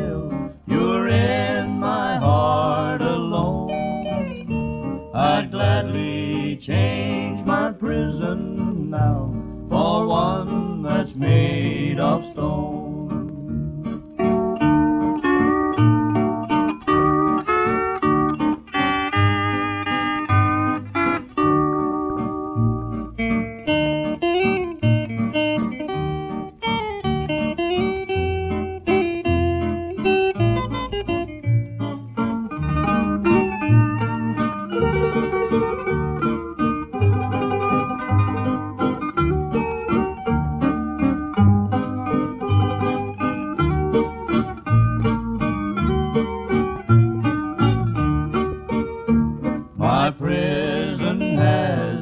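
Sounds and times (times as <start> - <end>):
string band with guitar playing: 0.0 - 52.0.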